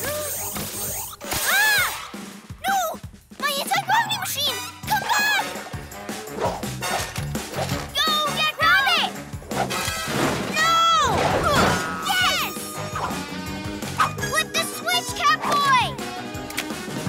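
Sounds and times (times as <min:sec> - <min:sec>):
cartoon action music: 0:00.0 - 0:16.3
crash: 0:09.8 - 0:12.0.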